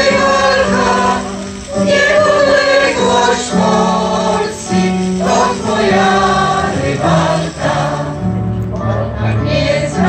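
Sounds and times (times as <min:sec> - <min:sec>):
choir singing in unison: 0:00.0 - 0:10.0.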